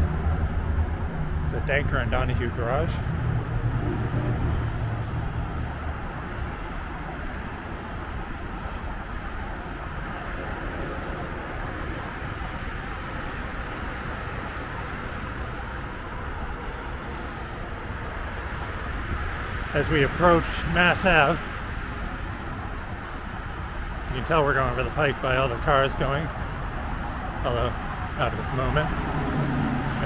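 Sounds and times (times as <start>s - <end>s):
city road traffic: 0.0s - 30.0s
vehicle engine low hum: 0.0s - 30.0s.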